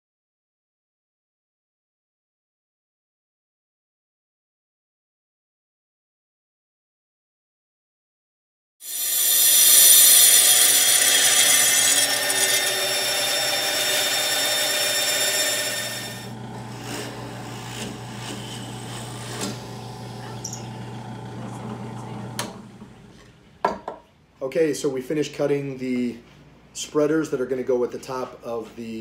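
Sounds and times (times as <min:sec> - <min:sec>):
band saw cutting plywood: 0:08.8 - 0:23.4
drill press boring holes: 0:08.8 - 0:23.4.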